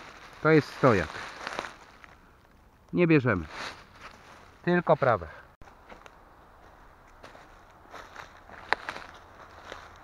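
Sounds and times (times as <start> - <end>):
rustling of grass and leaves: 0.0 - 10.0.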